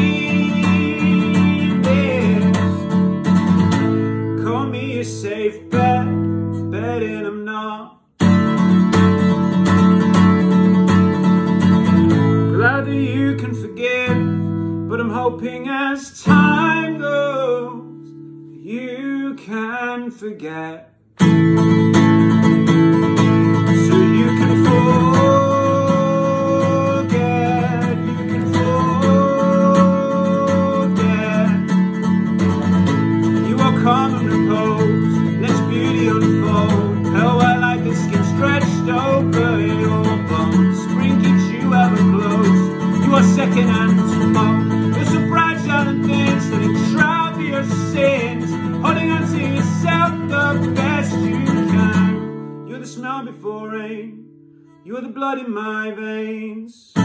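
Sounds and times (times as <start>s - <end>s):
man singing: 0.0s - 21.0s, 21.7s - 57.0s
acoustic guitar strummed: 0.0s - 56.4s.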